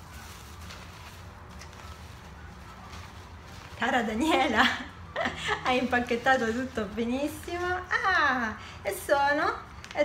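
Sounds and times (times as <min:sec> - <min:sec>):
tissue paper rustling: 0:00.0 - 0:09.9.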